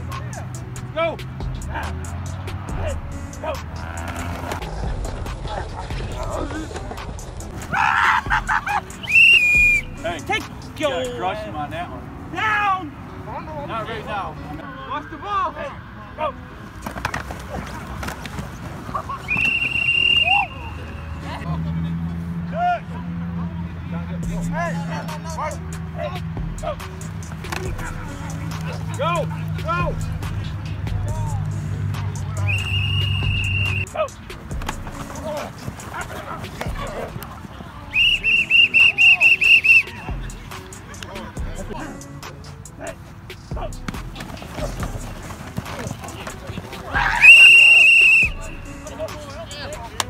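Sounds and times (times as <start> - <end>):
players shouting: 0.0 - 6.8, 7.4 - 21.5, 22.2 - 50.0
coach's whistle: 9.0 - 10.1, 19.2 - 21.2, 32.4 - 34.1, 37.9 - 40.2, 47.0 - 48.9
thumps of contact: 16.8 - 18.5, 27.4 - 27.8, 34.5 - 35.2.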